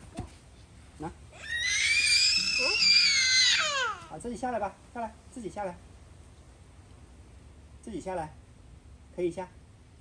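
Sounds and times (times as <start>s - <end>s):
child screaming: 1.4s - 4.1s.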